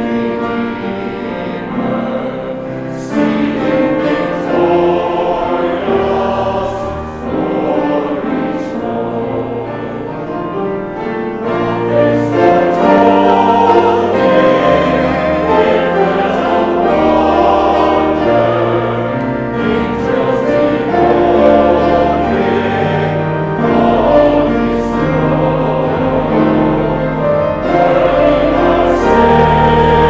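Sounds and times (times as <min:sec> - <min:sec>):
choir singing a hymn: 0:00.0 - 0:30.0
piano accompaniment: 0:00.0 - 0:30.0.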